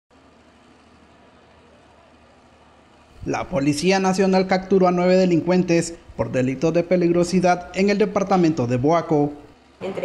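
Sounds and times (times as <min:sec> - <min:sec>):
low hum: 0:00.2 - 0:10.0.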